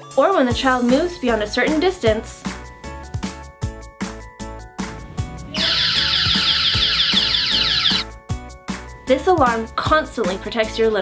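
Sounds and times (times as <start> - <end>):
background music with steady beat: 0.0 - 11.0
warbling electronic alarm: 5.5 - 8.1.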